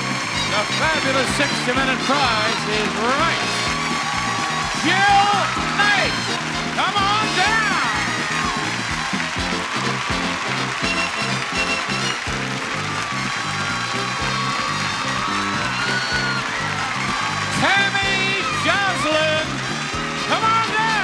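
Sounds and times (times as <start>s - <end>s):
studio audience clapping and cheering: 0.0s - 21.0s
upbeat game show music: 0.0s - 21.0s.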